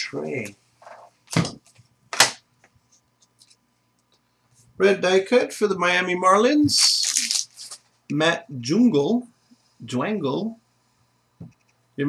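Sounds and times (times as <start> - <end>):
trading card packaging handled: 6.8 - 7.8.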